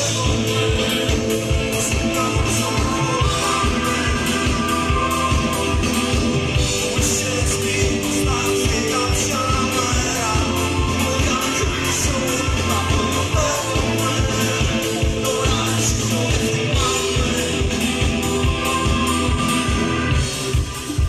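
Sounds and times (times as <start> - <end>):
man singing lead: 0.0 - 21.0
rock band playing live: 0.0 - 21.0.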